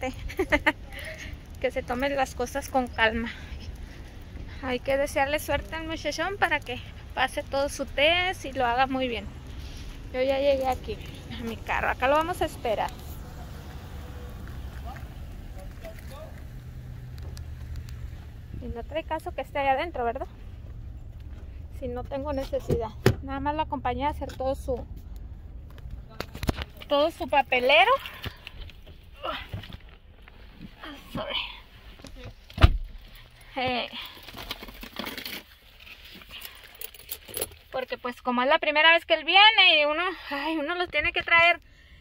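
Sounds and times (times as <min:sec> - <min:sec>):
low rumble: 0:00.0 - 0:30.8
clicking and rattling in car: 0:32.0 - 0:38.1
car door shutting: 0:32.5 - 0:33.0.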